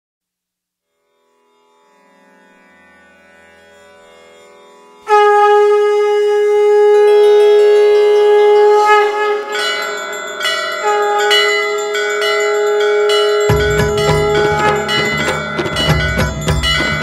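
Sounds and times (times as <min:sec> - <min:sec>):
conch shell blown: 0:05.0 - 0:17.0
temple bells struck: 0:09.4 - 0:17.0.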